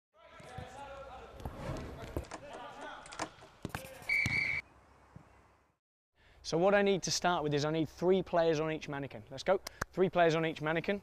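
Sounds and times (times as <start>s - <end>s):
players' voices: 0.2s - 4.2s.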